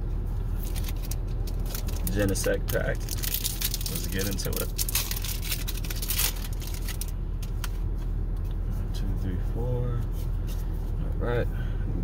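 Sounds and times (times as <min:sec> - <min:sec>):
foil wrapper crinkling: 0:00.6 - 0:07.2.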